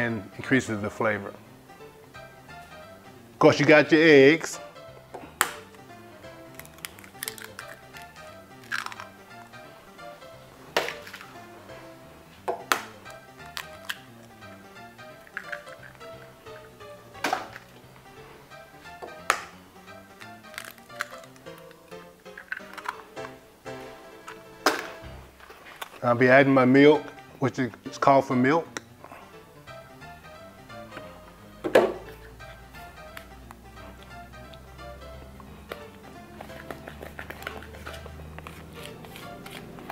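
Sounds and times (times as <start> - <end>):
soft background music: 0.0 - 39.9
eggs cracking on bowl rim: 6.5 - 9.2, 10.8 - 11.4, 12.5 - 14.1, 15.2 - 17.7, 19.1 - 23.4.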